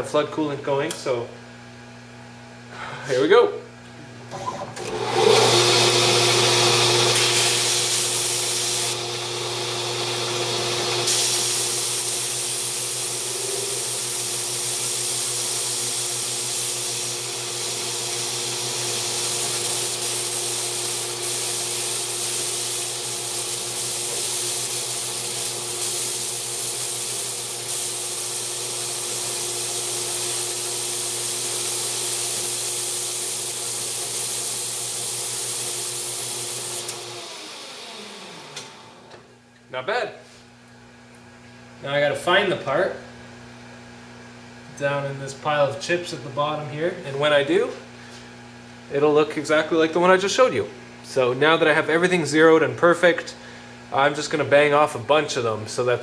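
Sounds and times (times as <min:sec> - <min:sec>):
lathe motor hum: 0:04.8 - 0:21.2, 0:35.4 - 0:39.2
compressed air hissing: 0:07.1 - 0:09.0, 0:11.0 - 0:17.2, 0:18.9 - 0:36.9.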